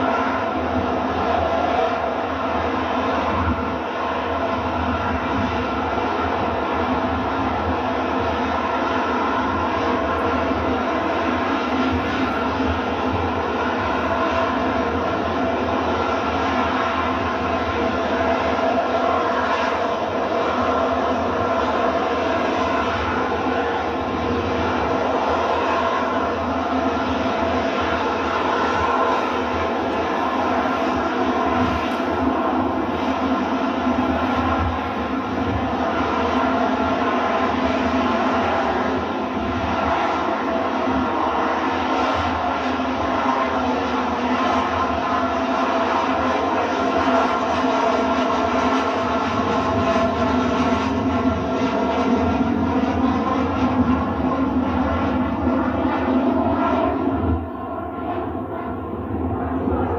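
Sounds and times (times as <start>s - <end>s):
jet engine at high thrust: 0.0s - 59.9s.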